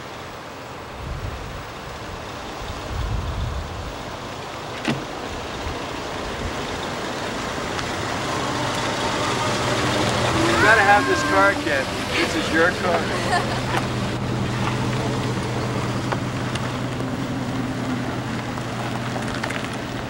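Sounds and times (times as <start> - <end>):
tyres rolling: 4.7 - 20.0
car engine running: 5.3 - 20.0.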